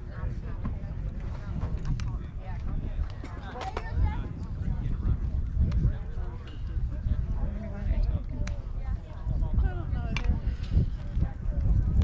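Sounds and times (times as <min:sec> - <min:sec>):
faint voices talking: 0:00.0 - 0:12.0
wind buffeting microphone: 0:00.0 - 0:12.0.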